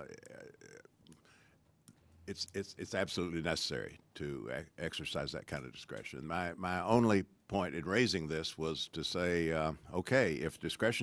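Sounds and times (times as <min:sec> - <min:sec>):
man saying uhh: 0:00.0 - 0:00.9.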